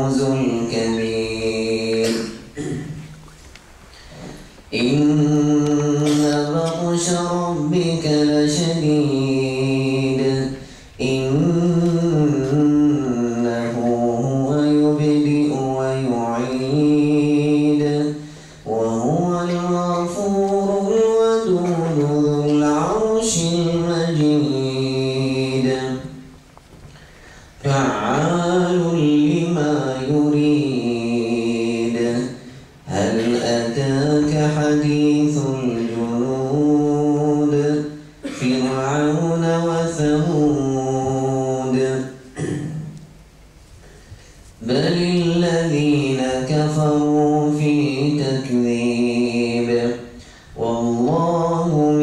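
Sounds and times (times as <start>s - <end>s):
man chanting: 0.0s - 3.2s, 4.7s - 26.2s, 27.6s - 43.0s, 44.6s - 52.0s
person breathing: 3.9s - 4.7s, 10.6s - 11.0s, 18.2s - 18.7s, 26.9s - 27.6s, 50.1s - 50.6s.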